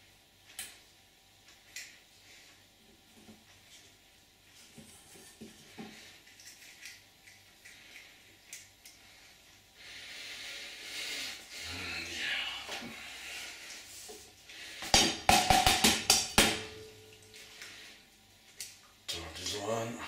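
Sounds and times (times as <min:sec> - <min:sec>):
egg knocking on metal bowl: 0:14.9 - 0:16.9.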